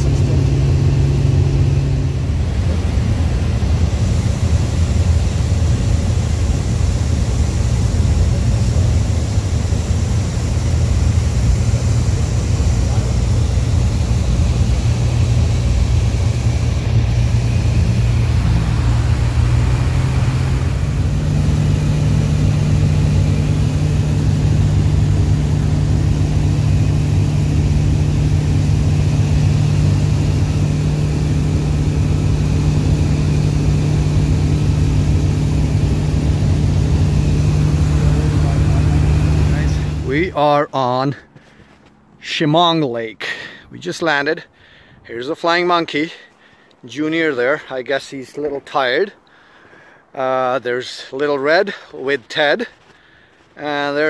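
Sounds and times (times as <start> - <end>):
aircraft engine and propeller: 0.0 - 42.2.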